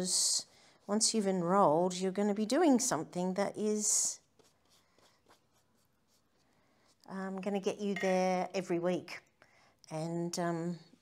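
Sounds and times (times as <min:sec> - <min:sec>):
paintbrush strokes on paper: 0:00.0 - 0:01.9, 0:03.7 - 0:07.9.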